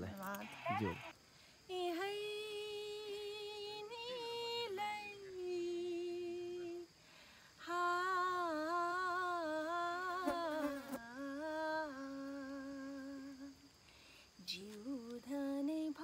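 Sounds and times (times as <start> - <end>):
woman singing unaccompanied: 1.7 - 6.9, 7.6 - 13.8, 14.4 - 16.0.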